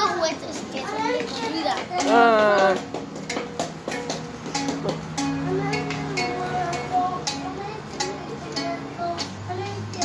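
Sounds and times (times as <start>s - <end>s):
children's voices: 0.0s - 3.0s, 5.0s - 10.0s.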